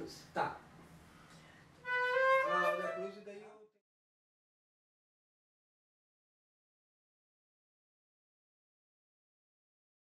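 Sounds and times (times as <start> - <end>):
flute playing held notes: 1.8 - 3.2.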